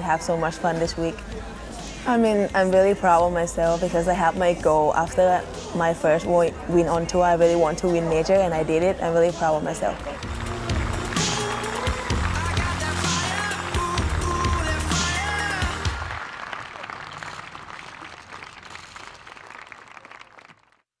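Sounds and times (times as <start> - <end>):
background music with bass line: 0.0 - 16.2.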